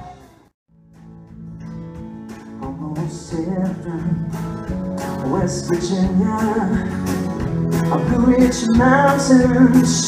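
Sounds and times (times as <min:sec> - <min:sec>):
acoustic guitar strumming: 0:00.0 - 0:10.0
country band playing: 0:00.0 - 0:10.0.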